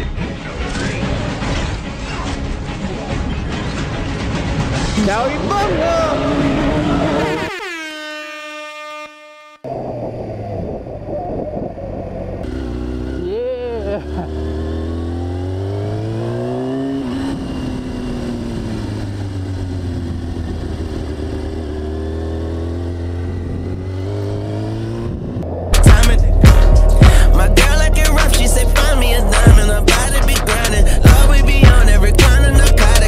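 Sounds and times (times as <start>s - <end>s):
motorcycle engine accelerating: 5.4s - 7.5s, 9.7s - 33.0s.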